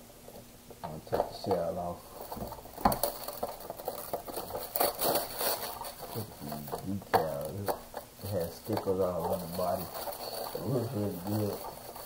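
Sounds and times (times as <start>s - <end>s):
plastic wrap crinkling: 1.1s - 12.0s.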